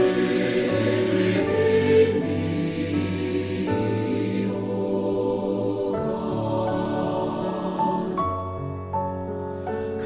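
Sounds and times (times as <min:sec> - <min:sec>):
church choir singing: 0:00.0 - 0:08.8.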